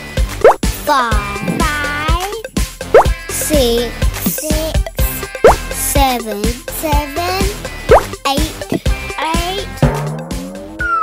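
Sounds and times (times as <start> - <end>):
playful children's music: 0.0 - 11.0.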